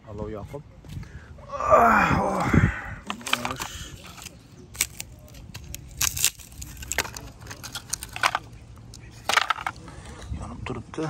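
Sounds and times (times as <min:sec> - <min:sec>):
wood fire crackling: 0:03.0 - 0:09.9.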